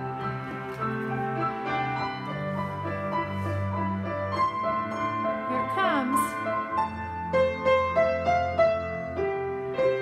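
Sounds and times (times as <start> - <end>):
upright piano playing: 0.0 - 10.0.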